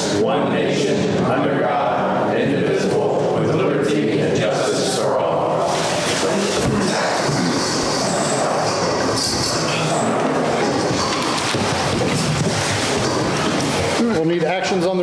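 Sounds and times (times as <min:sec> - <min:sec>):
chairs scraping on concrete floor: 0:05.6 - 0:14.0.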